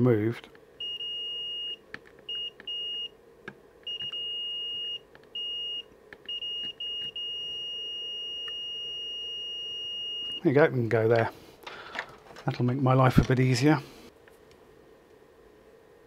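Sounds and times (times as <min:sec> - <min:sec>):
multimeter continuity beeps: 0:00.8 - 0:03.2, 0:03.8 - 0:10.5.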